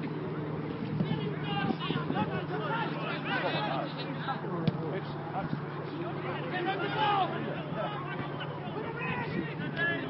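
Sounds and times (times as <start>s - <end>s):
distant players shouting: 0.6s - 10.0s.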